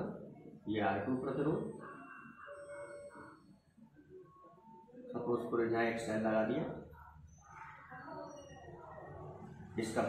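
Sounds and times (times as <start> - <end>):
marker squeaking on whiteboard: 6.9 - 9.4.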